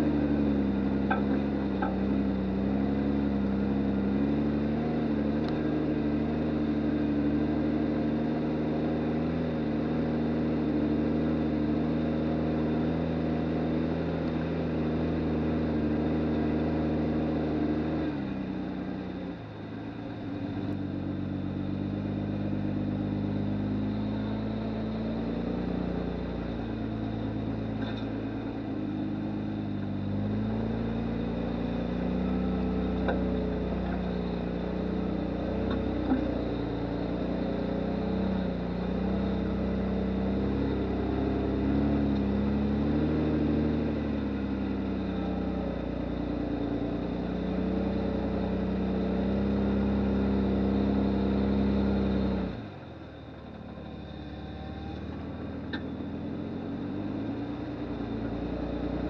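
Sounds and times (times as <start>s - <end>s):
truck engine droning: 0.0s - 59.0s.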